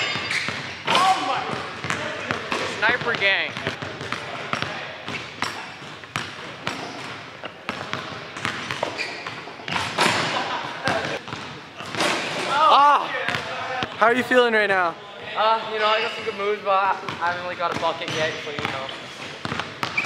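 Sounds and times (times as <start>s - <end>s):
basketball dribbling on hardwood: 1.5s - 9.9s, 10.9s - 12.0s, 19.4s - 20.0s
person shouting: 12.5s - 13.2s.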